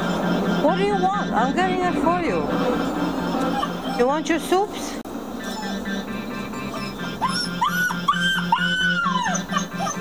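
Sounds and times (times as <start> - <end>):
puppy whining: 2.6 - 4.6, 5.4 - 10.0.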